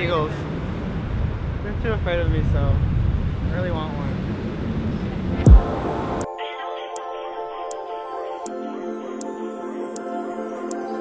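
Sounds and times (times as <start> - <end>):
wind buffeting microphone: 0.0 - 6.3
mellow background music: 5.3 - 11.0.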